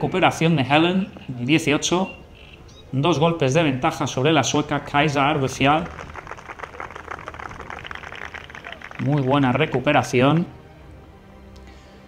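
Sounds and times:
spectators applauding: 5.6 - 10.4.

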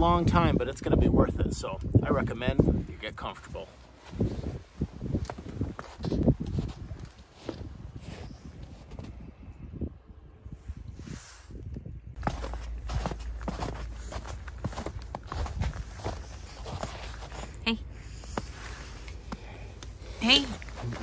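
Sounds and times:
steady low rumble: 0.0 - 21.0
footsteps: 12.2 - 19.5.

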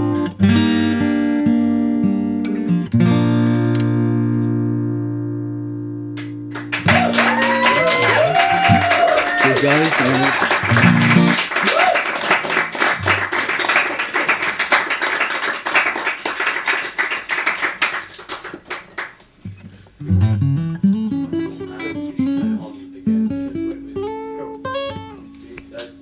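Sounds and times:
acoustic guitar fingerpicking: 0.0 - 6.9, 10.6 - 11.5, 19.3 - 26.0
audience clapping: 6.2 - 19.3.

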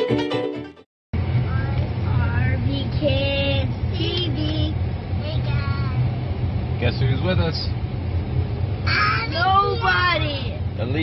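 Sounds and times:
car interior rumble: 1.2 - 11.0.

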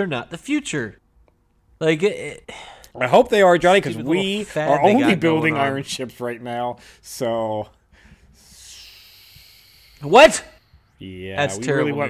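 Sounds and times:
breathy exhale: 7.9 - 10.8.

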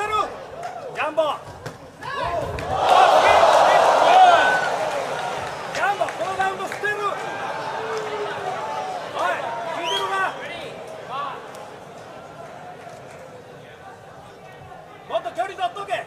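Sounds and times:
crowd noise: 0.0 - 16.0.

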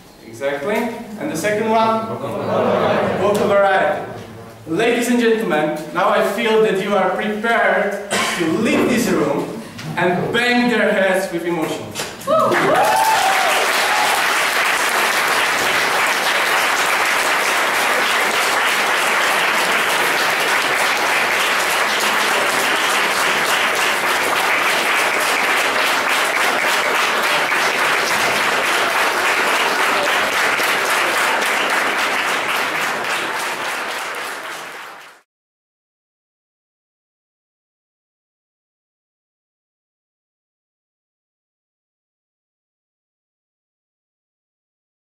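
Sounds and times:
audience applauding: 12.3 - 35.2.

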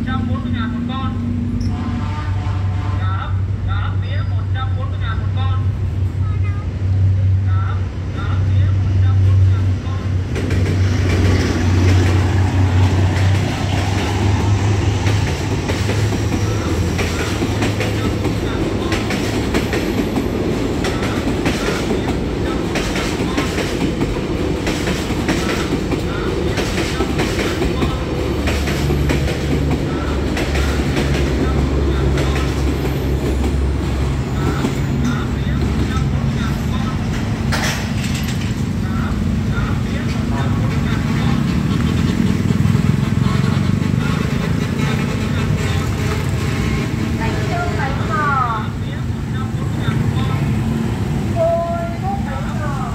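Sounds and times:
locomotive engine drone: 0.0 - 52.9
passing coaches rumbling: 0.0 - 52.9
train wheels clacking over rail joints: 10.3 - 47.2.

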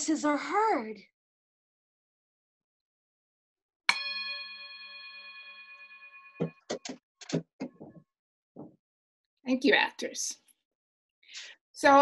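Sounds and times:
singing bowl ringing: 3.9 - 6.8.

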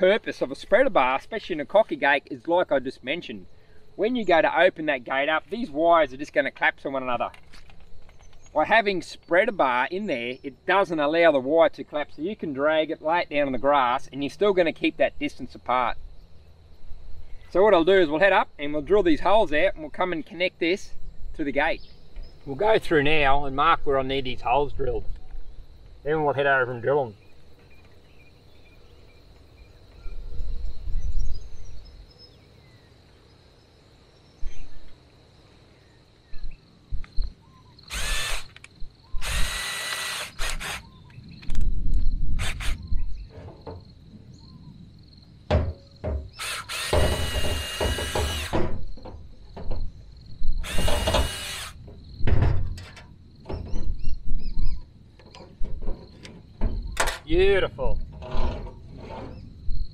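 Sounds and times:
cordless drill whining: 37.9 - 38.6, 39.2 - 40.9, 42.4 - 42.8, 46.4 - 48.6, 50.6 - 51.8.

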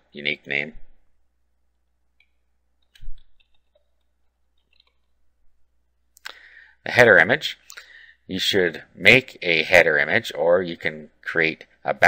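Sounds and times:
keyboard typing: 2.2 - 5.2.

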